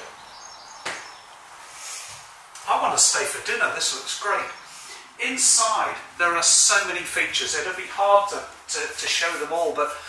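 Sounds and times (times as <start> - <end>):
faint hiss of room tone: 0.0 - 10.0.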